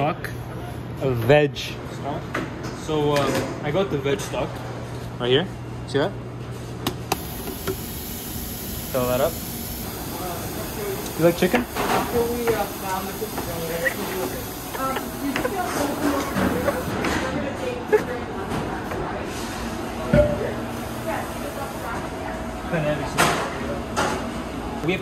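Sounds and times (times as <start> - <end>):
voices in a kitchen: 0.0 - 25.0.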